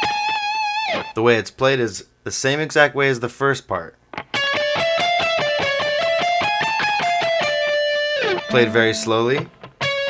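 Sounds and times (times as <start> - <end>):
electric guitar single-note line: 6.4 - 10.0.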